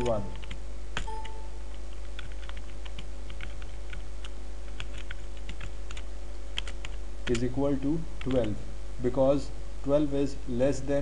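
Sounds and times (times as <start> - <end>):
computer keyboard clicks: 0.0 - 7.5
faint steady hum: 0.0 - 11.0.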